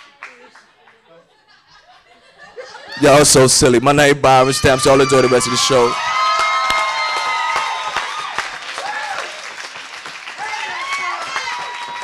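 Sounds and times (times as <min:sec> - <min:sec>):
people cheering: 0:04.2 - 0:12.0
audience applauding: 0:05.0 - 0:12.0.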